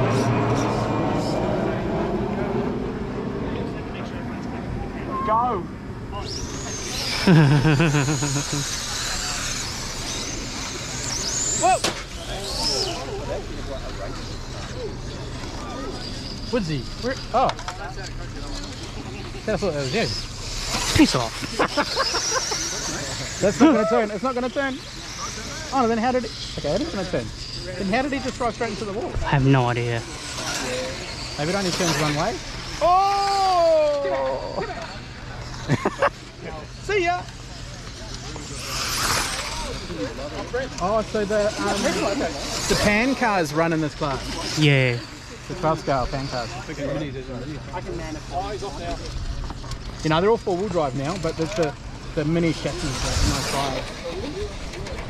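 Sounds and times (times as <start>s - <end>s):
rc car motors whining: 0.0s - 55.0s
voices: 0.0s - 55.0s.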